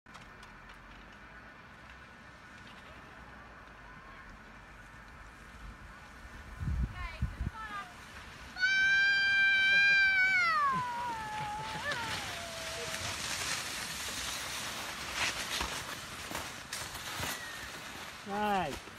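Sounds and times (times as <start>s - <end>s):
skis scraping over packed snow: 0.1s - 18.9s.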